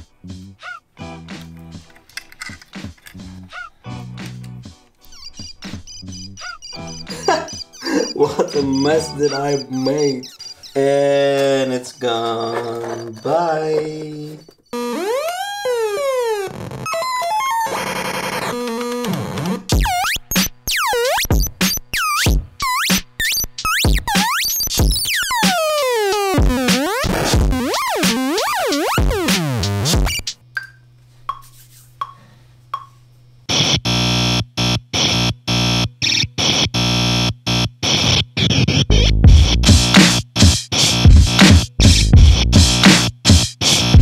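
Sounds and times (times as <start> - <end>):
electronic toy sound effects: 5.1 - 18.6
harsh buzzing stuttering drum machine: 5.2 - 11.0, 14.7 - 30.4, 33.5 - 44.0.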